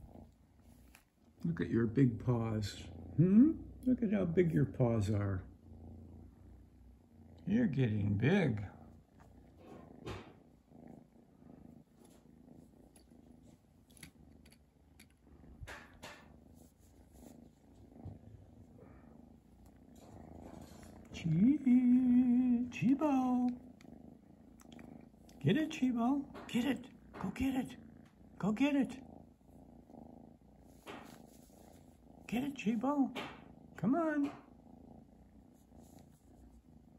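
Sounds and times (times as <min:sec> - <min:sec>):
kitten purring: 0:00.0 - 0:36.9.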